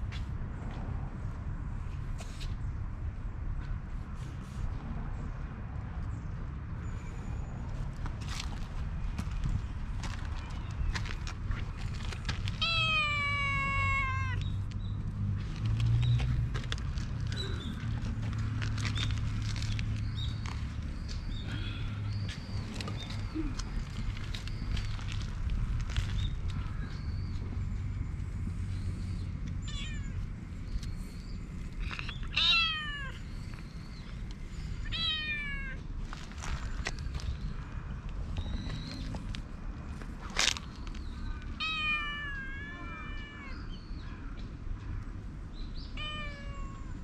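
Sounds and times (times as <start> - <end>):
cat meowing: 12.6 - 14.4, 29.6 - 30.2, 32.3 - 33.2, 34.8 - 35.8, 41.6 - 43.7, 46.0 - 47.0.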